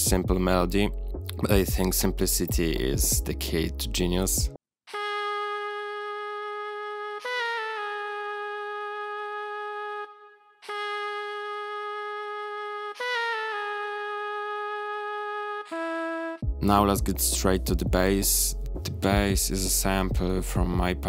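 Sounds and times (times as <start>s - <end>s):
synth saxophone melody: 4.9s - 17.9s.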